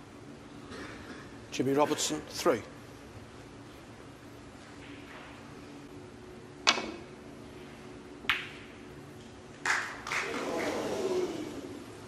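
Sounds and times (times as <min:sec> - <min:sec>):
quiet arena hum: 0:00.0 - 0:12.0
balls colliding click: 0:08.2 - 0:09.3.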